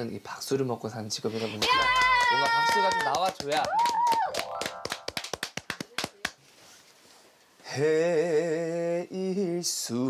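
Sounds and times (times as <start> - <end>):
people clapping: 1.4 - 6.4.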